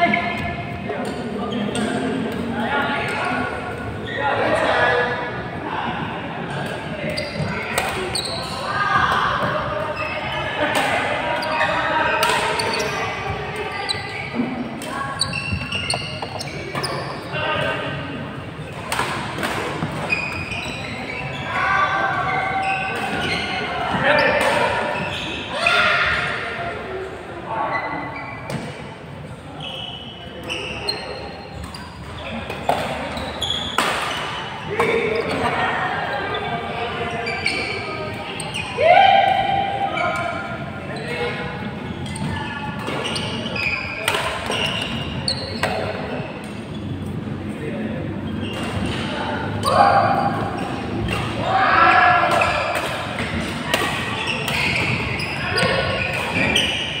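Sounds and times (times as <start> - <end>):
chatter of voices: 0.0 - 57.0
shoes squeaking on court: 7.0 - 10.5, 11.3 - 17.9, 18.6 - 25.6, 27.7 - 29.0, 29.6 - 38.8, 39.9 - 47.2, 48.2 - 57.0.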